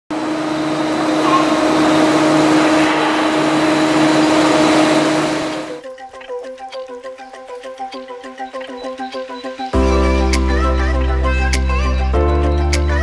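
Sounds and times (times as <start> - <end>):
construction machinery droning: 0.1 - 5.8.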